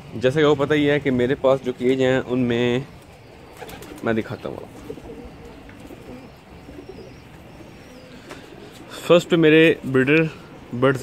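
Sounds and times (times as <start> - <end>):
pigeons cooing faintly: 0.0 - 11.0.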